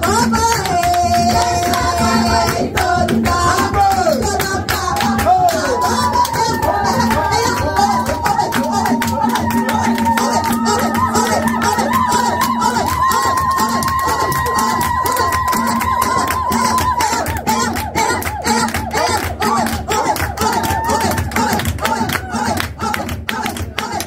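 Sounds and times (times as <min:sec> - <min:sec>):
upbeat dance music: 0:00.0 - 0:24.0
crowd voices: 0:05.4 - 0:23.0.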